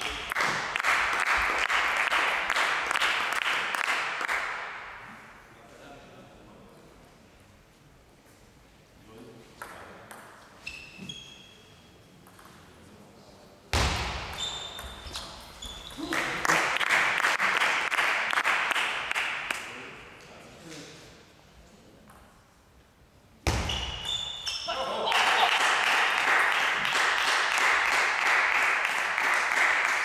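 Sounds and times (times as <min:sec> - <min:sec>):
table tennis ball bouncing: 0:12.2 - 0:12.6
voices cheering in a hall: 0:24.6 - 0:30.0
loud shout: 0:24.7 - 0:25.9.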